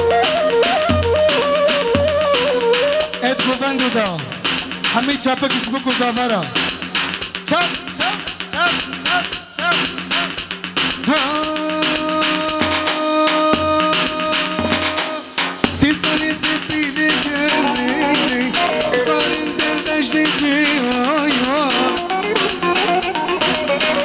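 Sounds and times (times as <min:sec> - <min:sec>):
fast steady drumming: 0:00.0 - 0:24.0
live band dance music: 0:00.0 - 0:24.0.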